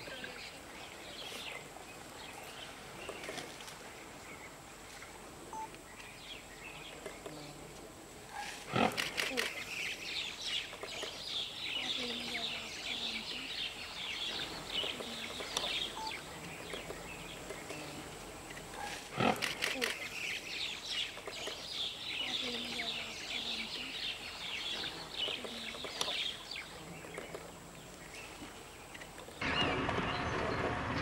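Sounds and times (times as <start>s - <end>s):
faint birds chirping: 0.0s - 30.6s.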